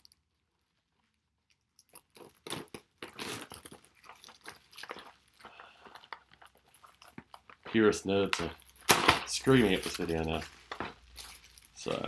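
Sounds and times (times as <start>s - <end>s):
plastic shrink wrap crinkling: 0.0s - 12.0s.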